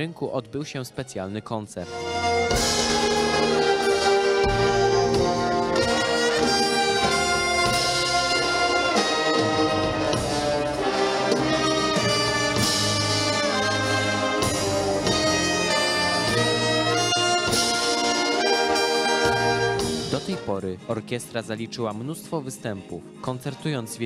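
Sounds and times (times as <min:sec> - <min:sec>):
saxophones: 0:01.8 - 0:20.6
trombones: 0:01.8 - 0:20.7
trumpets: 0:01.8 - 0:20.7.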